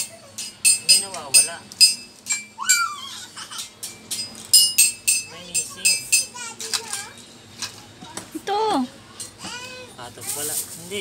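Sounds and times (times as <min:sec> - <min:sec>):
light metallic clinks: 0:00.4 - 0:02.5, 0:03.6 - 0:06.4.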